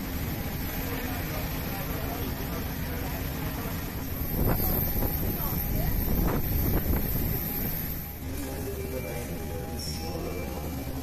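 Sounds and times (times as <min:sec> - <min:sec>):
low airport rumble: 0:00.0 - 0:11.0
wind buffeting microphone: 0:04.1 - 0:08.0.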